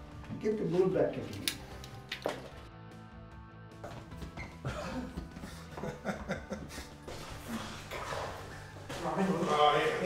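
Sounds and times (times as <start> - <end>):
laughter: 4.6 - 6.9.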